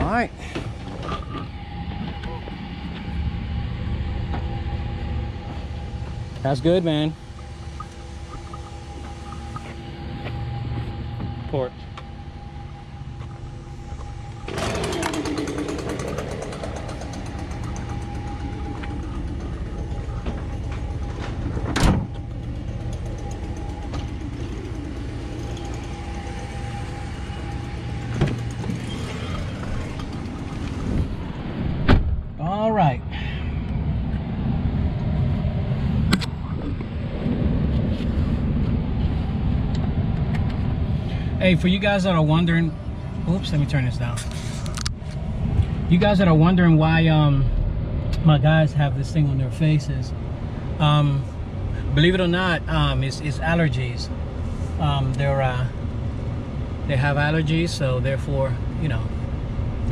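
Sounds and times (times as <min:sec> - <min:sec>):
engine running steadily: 0:00.0 - 0:59.9.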